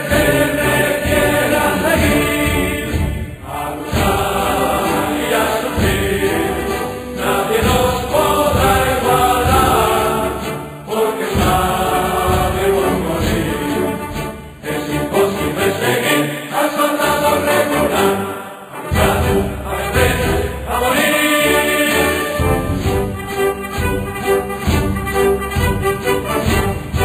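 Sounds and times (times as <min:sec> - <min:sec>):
drum beat: 0:00.0 - 0:10.5, 0:11.2 - 0:14.5, 0:18.9 - 0:21.2, 0:22.3 - 0:27.0
choir singing held notes: 0:00.0 - 0:27.0.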